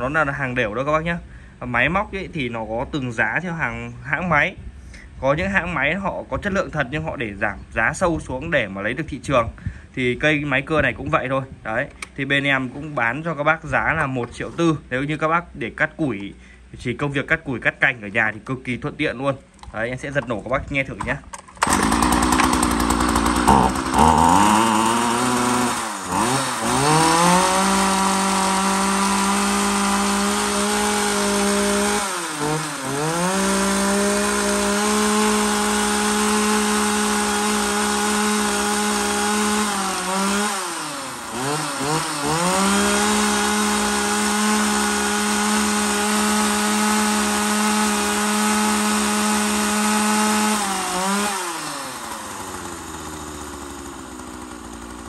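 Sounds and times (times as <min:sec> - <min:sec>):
chainsaw revving and idling: 0:21.3 - 0:55.0.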